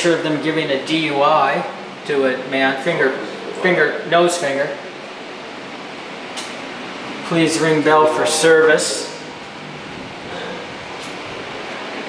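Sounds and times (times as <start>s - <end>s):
air conditioning hiss: 0.0s - 12.0s.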